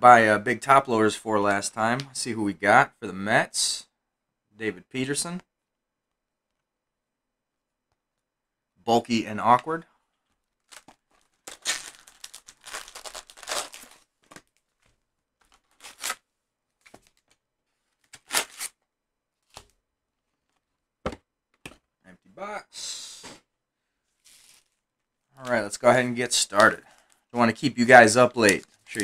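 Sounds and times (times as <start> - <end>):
card pack wrappers crinkling: 10.6 - 16.2, 16.8 - 18.7, 24.2 - 24.8, 25.4 - 27.2, 27.9 - 29.0.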